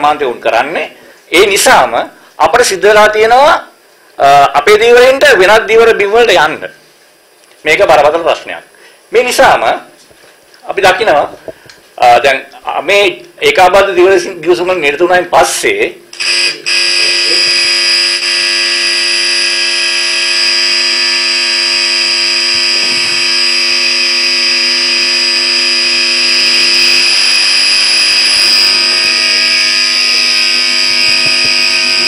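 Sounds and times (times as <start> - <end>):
speech: 0.0 - 6.8, 7.6 - 9.9, 10.6 - 11.4, 12.0 - 17.5
electronic buzzing tone: 16.2 - 32.0.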